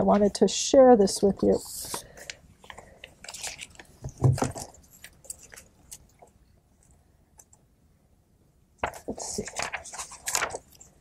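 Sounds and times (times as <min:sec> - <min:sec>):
paper rustling: 0:01.5 - 0:06.3, 0:08.8 - 0:11.0.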